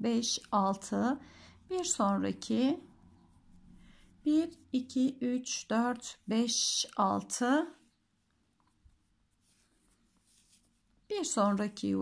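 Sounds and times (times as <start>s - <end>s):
yarn rubbing on crochet hook: 0.0s - 6.8s, 8.5s - 12.0s.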